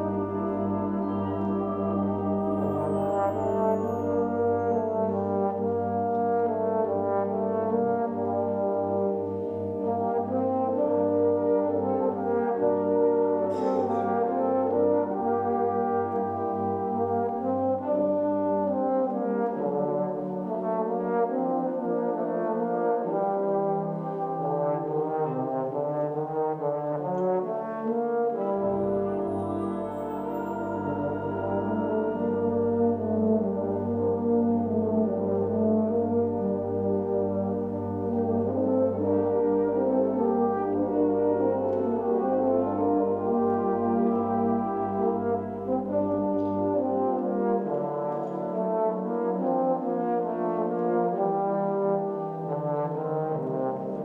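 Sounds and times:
baritone horn melody: 0.0 - 54.0
brass band playing: 0.0 - 54.0.

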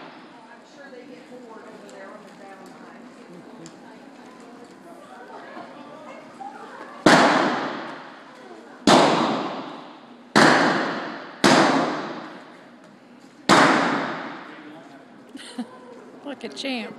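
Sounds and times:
revolver gunshots with echo: 7.0 - 8.1, 8.9 - 12.4, 13.5 - 14.5.

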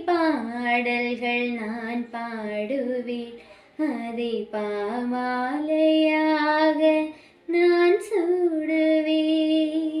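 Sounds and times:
young woman singing: 0.0 - 10.0.

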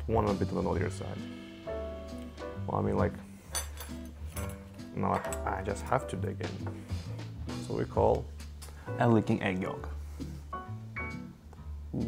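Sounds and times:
cutlery clinking: 3.5 - 5.5.

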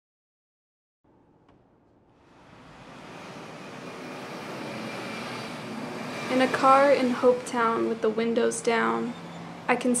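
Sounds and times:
car road and wind noise: 2.2 - 9.9.

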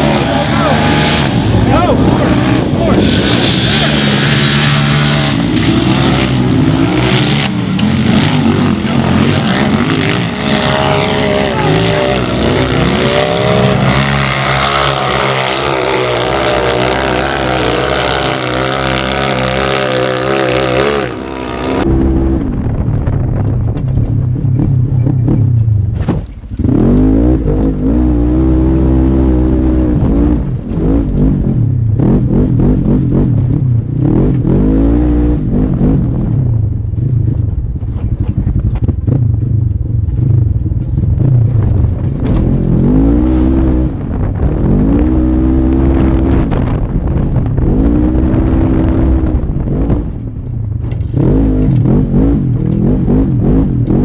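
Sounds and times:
off-road vehicle engines revving: 0.0 - 54.0.

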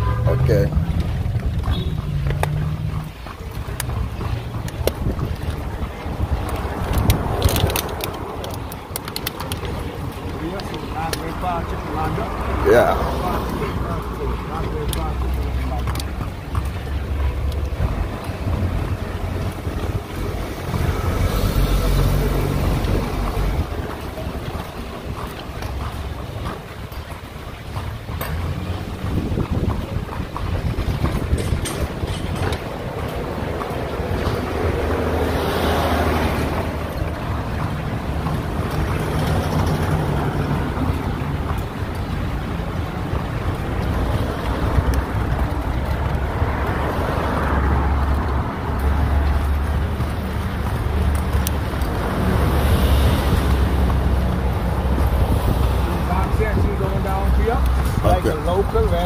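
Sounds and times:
street traffic rumble: 0.0 - 59.0
wind buffeting microphone: 0.7 - 14.2, 16.0 - 59.0.

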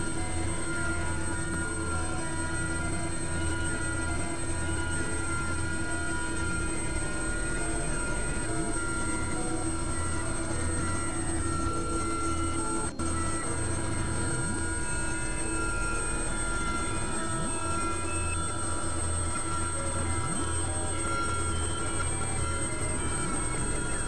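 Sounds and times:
pulsing low hum: 0.0 - 24.0
sustained synthesizer tones: 0.0 - 24.0.

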